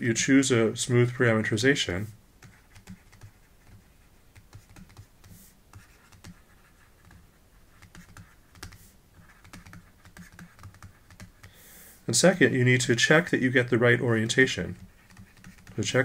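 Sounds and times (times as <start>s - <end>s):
stylus clicking and scratching: 2.4s - 11.6s, 12.8s - 16.0s.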